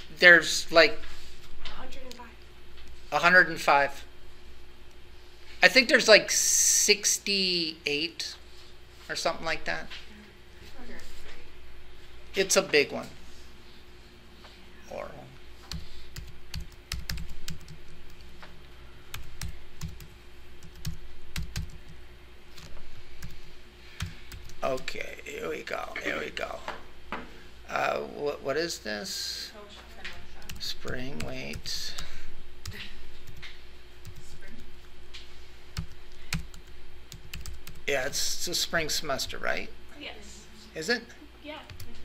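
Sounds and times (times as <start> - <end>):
faint steady hum: 0.0 - 42.0
computer keyboard keystrokes: 15.7 - 18.2, 19.1 - 21.9, 35.8 - 37.8.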